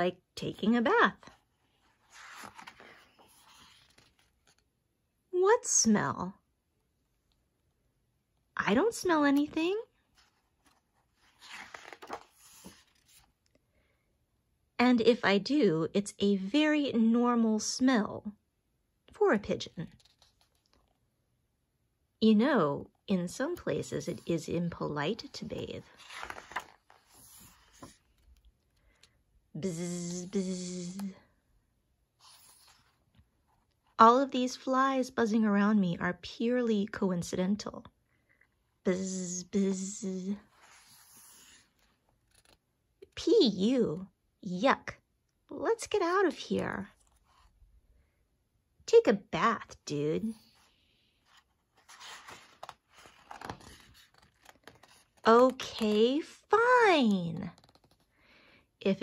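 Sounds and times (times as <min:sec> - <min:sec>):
book page turning: 0:01.2 - 0:04.8, 0:10.0 - 0:13.5, 0:19.8 - 0:21.0, 0:24.1 - 0:29.2, 0:32.2 - 0:33.2, 0:40.5 - 0:42.7, 0:50.4 - 0:56.5, 0:57.5 - 0:58.1.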